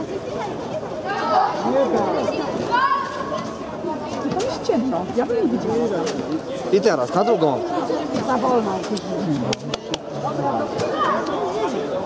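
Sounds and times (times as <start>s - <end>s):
voices calling and chattering: 0.0s - 12.0s.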